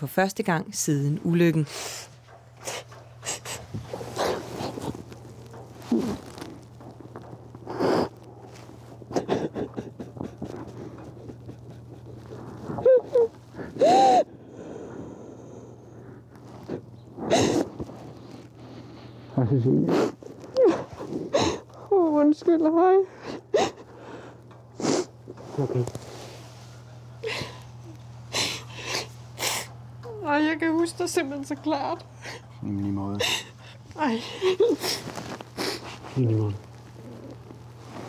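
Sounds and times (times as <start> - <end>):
woman crying: 9.1 - 12.1, 12.7 - 14.3, 23.2 - 23.9, 27.2 - 27.7, 28.3 - 30.4, 31.8 - 32.6, 33.2 - 35.8
woman sobbing: 9.1 - 14.4, 17.3 - 17.8, 20.5 - 22.1, 23.0 - 24.0, 27.2 - 30.4, 32.1 - 32.6, 33.2 - 36.0.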